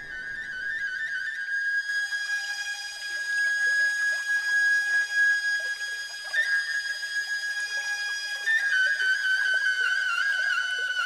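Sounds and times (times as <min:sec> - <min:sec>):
flute long high note: 0:00.0 - 0:11.0.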